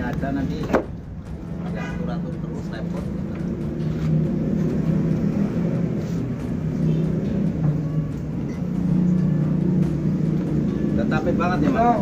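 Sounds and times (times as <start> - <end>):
engine droning: 0.0 - 12.0.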